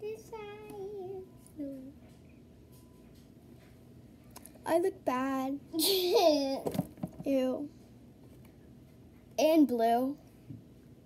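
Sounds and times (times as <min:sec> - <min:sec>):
girl singing wordlessly: 0:00.0 - 0:02.0.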